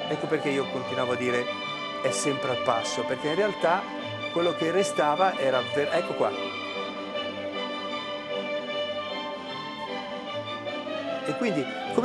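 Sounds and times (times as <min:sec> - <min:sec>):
orchestral strings sustained chords: 0:00.0 - 0:12.0.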